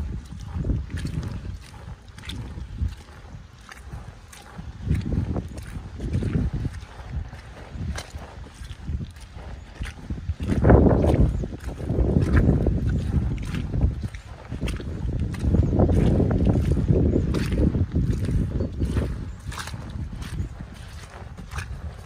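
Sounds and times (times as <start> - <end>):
boots squelching through mud: 0.0 - 22.0.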